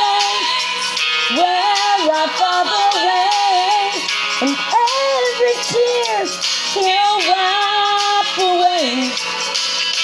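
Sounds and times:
woman singing a slow ballad: 0.0s - 9.2s
backing track: 0.0s - 10.0s.

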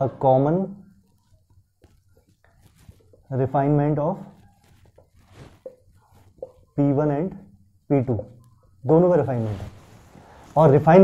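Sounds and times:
marker pen squeaking on whiteboard: 0.8s - 7.0s.

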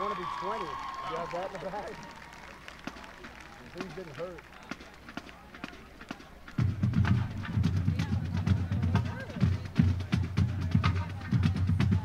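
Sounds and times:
crowd murmur: 0.0s - 12.0s
marching band drums: 2.8s - 12.0s.

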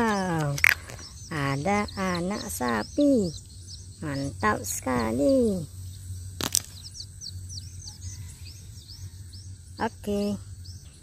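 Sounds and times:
small birds chirping: 0.0s - 11.0s.

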